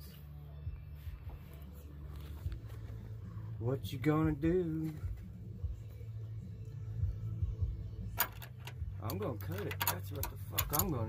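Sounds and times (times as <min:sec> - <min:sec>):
faint background music: 0:00.0 - 0:11.0
low steady hum: 0:00.0 - 0:11.0
socket wrench ratchet clicks: 0:09.5 - 0:11.0.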